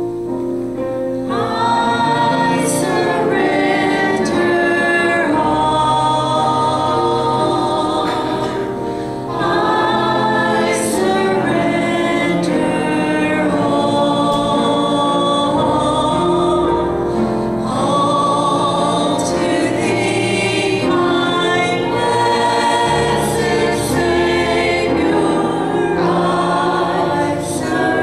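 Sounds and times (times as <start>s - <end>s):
group singing a slow hymn: 1.2s - 28.0s.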